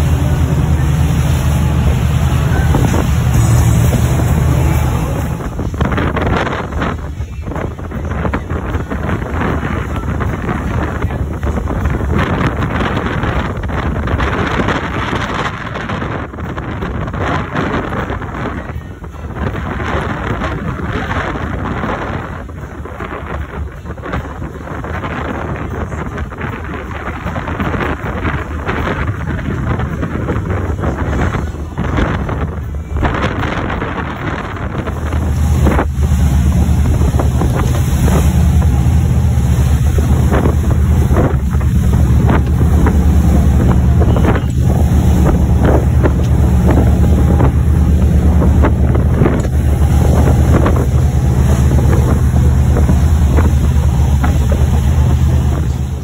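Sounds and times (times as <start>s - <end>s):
boat engine: 0.0s - 56.0s
boat wake rushing: 0.0s - 56.0s
heavy low rumble: 0.0s - 56.0s
wind buffeting microphone: 0.0s - 56.0s.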